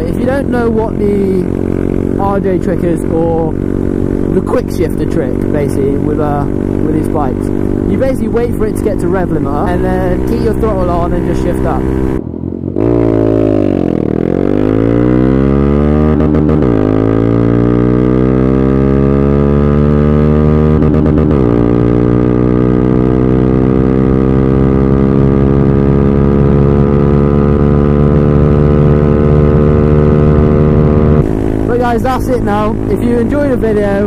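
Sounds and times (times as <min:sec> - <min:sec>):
motorcycle engine accelerating: 0:00.0 - 0:34.0.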